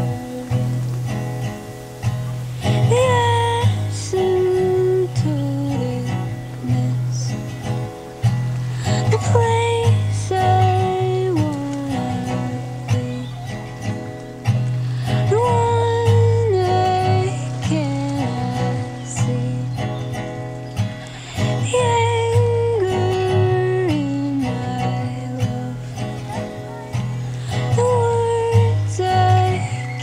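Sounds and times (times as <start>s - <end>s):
acoustic guitar played slowly: 0.0s - 30.0s.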